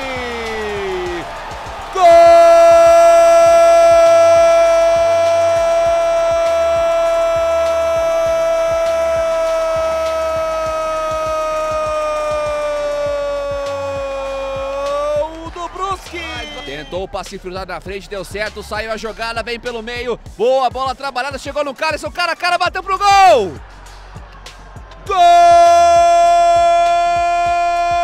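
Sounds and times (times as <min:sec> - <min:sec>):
commentator's long goal cry: 0:01.9 - 0:15.9, 0:25.1 - 0:28.0
man speaking rapidly: 0:14.8 - 0:23.6.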